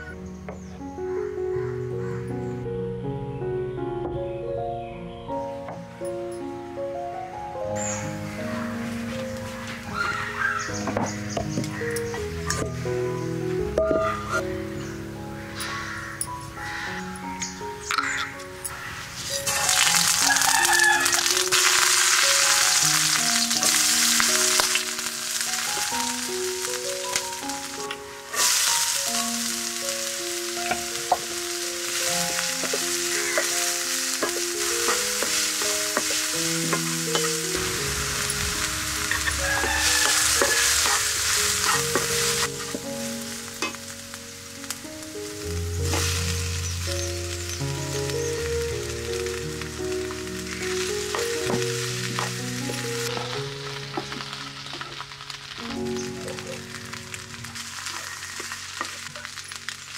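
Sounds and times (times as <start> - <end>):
instrumental melody: 0.0 - 59.9
onion frying in hot oil: 17.8 - 59.9
spatula stirring: 30.6 - 37.5, 39.1 - 42.9.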